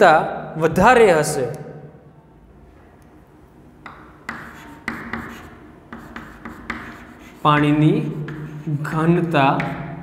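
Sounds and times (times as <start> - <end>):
chalk scratching on blackboard: 3.9 - 9.8.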